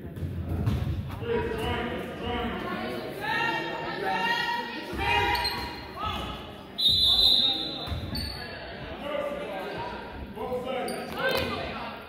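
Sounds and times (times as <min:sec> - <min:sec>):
voices of players and spectators: 0:00.0 - 0:12.0
referee's whistle blast: 0:06.8 - 0:07.9.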